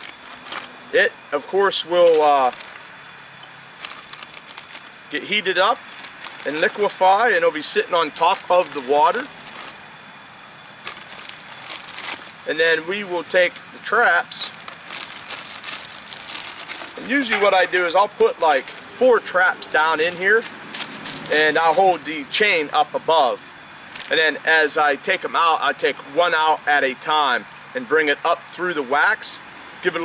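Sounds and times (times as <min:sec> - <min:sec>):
steady background hiss: 0:00.0 - 0:30.0
plastic bag clicks and rustles: 0:02.0 - 0:02.8, 0:03.8 - 0:04.9, 0:05.8 - 0:06.9, 0:07.7 - 0:09.8, 0:10.8 - 0:12.4, 0:14.5 - 0:18.9, 0:20.3 - 0:22.0.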